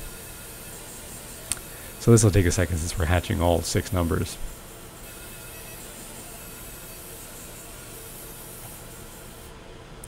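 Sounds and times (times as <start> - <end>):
laser marking hiss: 0.0 - 9.5
low machine hum: 0.0 - 10.0.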